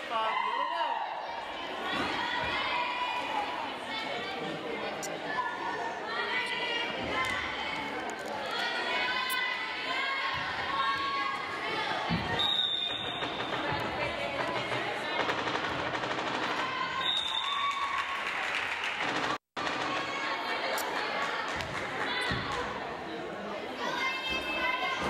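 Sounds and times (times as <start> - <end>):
spectators chatting in gymnasium: 0.0 - 25.0.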